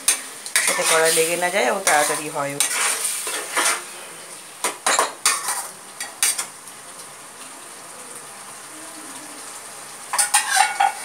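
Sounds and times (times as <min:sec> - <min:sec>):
spatula scraping a pan: 0:00.0 - 0:04.2, 0:04.9 - 0:06.5, 0:10.1 - 0:11.0
chicken sizzling: 0:00.0 - 0:11.0.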